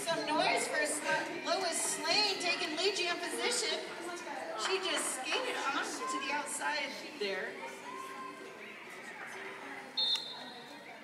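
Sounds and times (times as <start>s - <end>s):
crowd chatter: 0.0s - 11.0s
referee's whistle blast: 10.0s - 10.5s.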